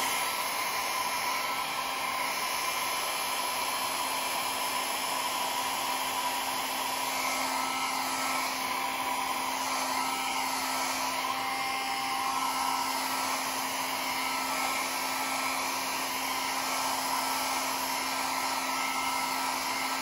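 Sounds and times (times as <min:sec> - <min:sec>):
hot-air tool blowing: 0:00.0 - 0:20.0.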